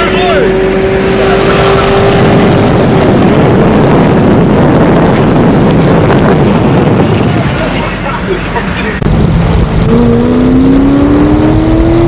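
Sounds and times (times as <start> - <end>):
car engine drone: 0.0 - 12.0
engine and wind rush: 0.0 - 12.0.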